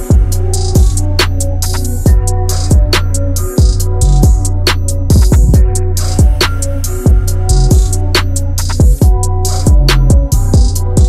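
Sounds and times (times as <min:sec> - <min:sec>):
crisp high percussion hits: 0:00.0 - 0:11.0
drum machine beat: 0:00.0 - 0:11.0
steady bass line: 0:00.0 - 0:11.0
booming low kicks: 0:02.1 - 0:11.0.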